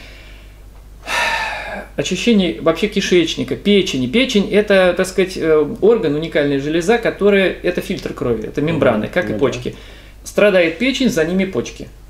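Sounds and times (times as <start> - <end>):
man's sharp in-breath: 0.0 - 1.9, 9.8 - 10.2.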